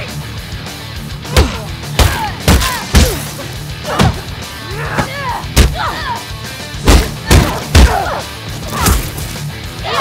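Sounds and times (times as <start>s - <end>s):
heavy booming punch impacts: 6.8s - 8.1s.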